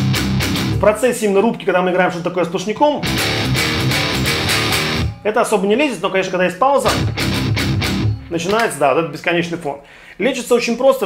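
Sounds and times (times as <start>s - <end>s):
distorted electric guitar riff: 0.0s - 1.4s, 2.9s - 5.3s, 6.8s - 8.8s.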